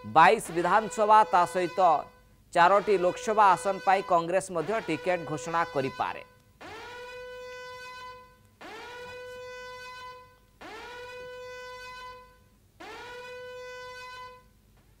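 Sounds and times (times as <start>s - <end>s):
horn-like news sting blasts: 0.0s - 6.3s.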